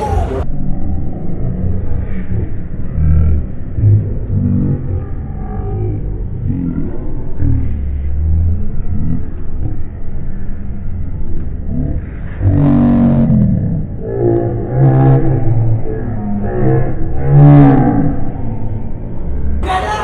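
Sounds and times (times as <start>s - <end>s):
men shouting muffled and distorted: 0.0s - 0.5s, 19.6s - 20.0s
low crowd rumble: 0.0s - 20.0s.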